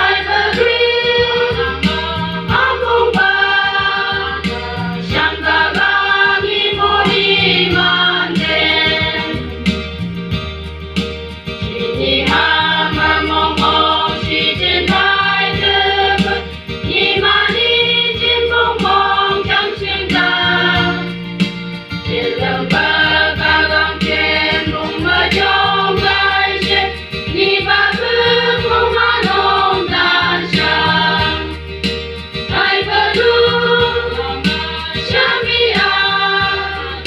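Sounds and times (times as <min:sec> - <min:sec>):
women's choir singing gospel: 0:00.0 - 0:09.8, 0:11.6 - 0:21.3, 0:22.0 - 0:31.6, 0:32.5 - 0:37.0
electronic keyboard bass notes: 0:00.0 - 0:37.0.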